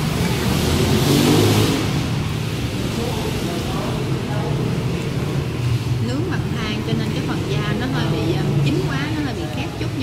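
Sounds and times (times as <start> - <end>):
indistinct chatter: 2.0 - 10.0.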